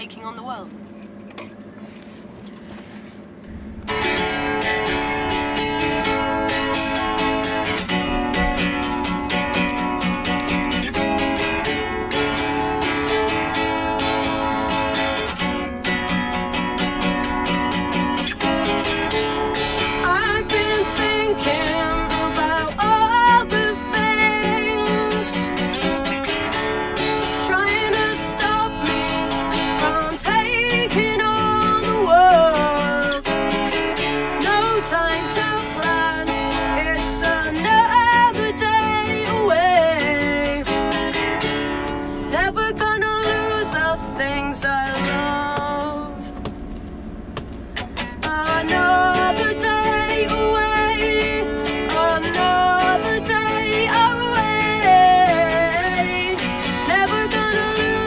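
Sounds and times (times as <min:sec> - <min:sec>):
acoustic guitar strumming chords: 0:03.4 - 0:58.0
woman singing: 0:19.8 - 0:26.1, 0:27.2 - 0:33.6, 0:34.2 - 0:41.5, 0:42.2 - 0:46.3, 0:48.2 - 0:58.0.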